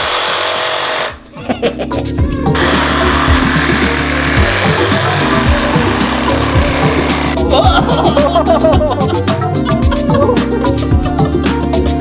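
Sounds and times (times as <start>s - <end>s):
reciprocating saw cutting: 0.0s - 1.2s, 2.6s - 7.4s
background music with steady beat: 1.1s - 12.0s.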